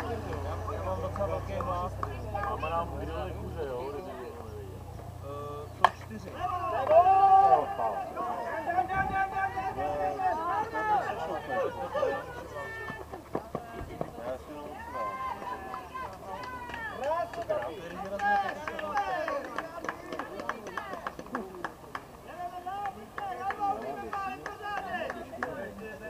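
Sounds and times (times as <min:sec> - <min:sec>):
players calling and talking: 0:00.0 - 0:26.0.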